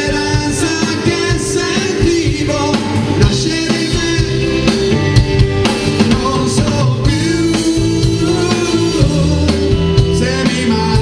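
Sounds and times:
man singing: 0:00.0 - 0:05.0, 0:05.9 - 0:11.0
drum kit: 0:00.0 - 0:11.0
electric guitar: 0:00.0 - 0:11.0.

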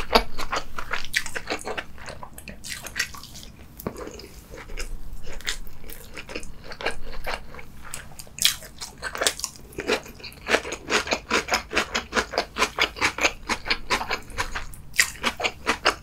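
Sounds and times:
crunchy chewing: 0:00.0 - 0:16.0.

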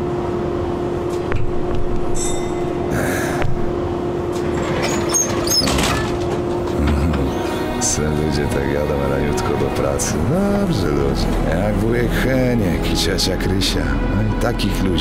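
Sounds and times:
background music: 0:02.2 - 0:15.0
clinks and rattles: 0:04.3 - 0:07.4
high squeaks: 0:04.4 - 0:07.7.

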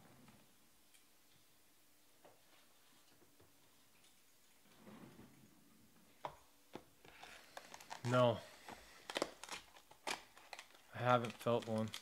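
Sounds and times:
foil card packs rustling: 0:07.1 - 0:12.0.

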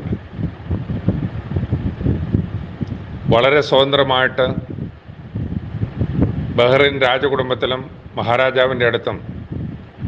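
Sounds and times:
wind noise on microphone: 0:00.0 - 0:10.0.

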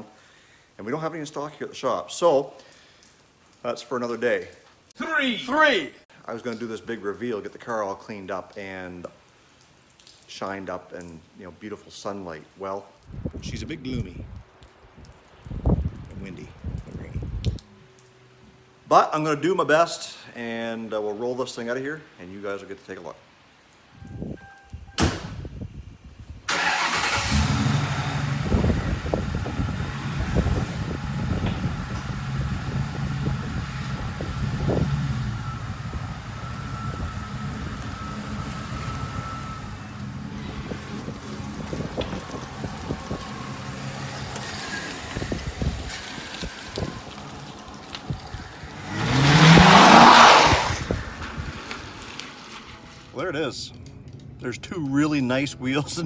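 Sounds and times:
engine revving: 0:26.5 - 0:46.0, 0:48.2 - 0:51.0
car engine starting and idling: 0:26.5 - 0:53.2.

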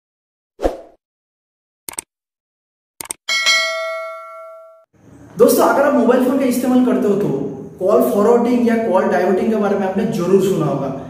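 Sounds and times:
bell ding: 0:03.3 - 0:04.9.

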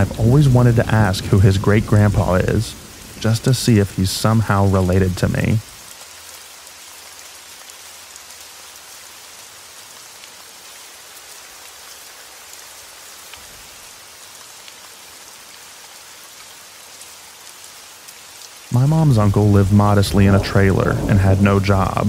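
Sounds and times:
light rain hissing: 0:00.0 - 0:22.0
raindrop ticks: 0:00.0 - 0:22.0.

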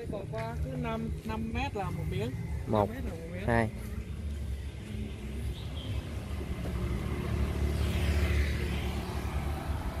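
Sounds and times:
street traffic rumble: 0:00.0 - 0:10.0
motorbike passing close: 0:05.2 - 0:10.0.

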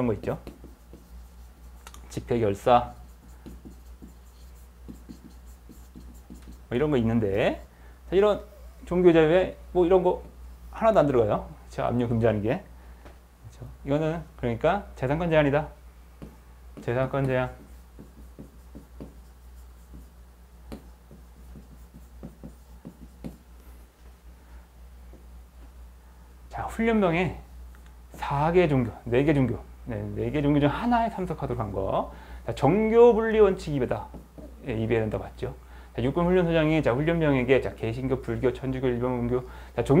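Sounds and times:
low steady hum: 0:00.0 - 0:40.0
stylus tapping and scratching screen: 0:00.2 - 0:07.5, 0:16.2 - 0:23.7.

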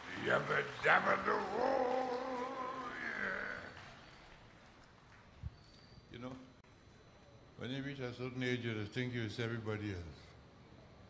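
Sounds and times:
man's voice holding a long vowel: 0:00.0 - 0:03.8.

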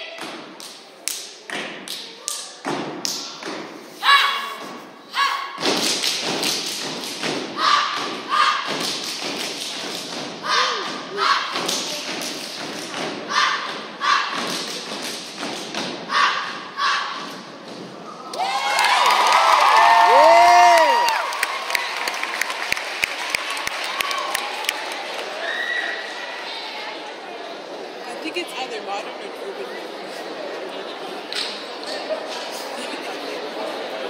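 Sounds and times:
rhythmic stomps and claps: 0:05.6 - 0:25.3
short shouted calls: 0:07.6 - 0:08.7.

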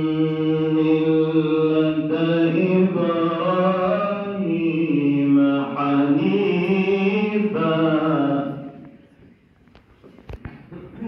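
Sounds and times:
men chanting religious chant: 0:00.0 - 0:08.9.

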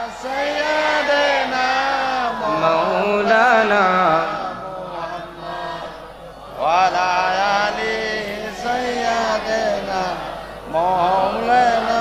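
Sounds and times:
boy chanting melodically: 0:00.0 - 0:12.0.

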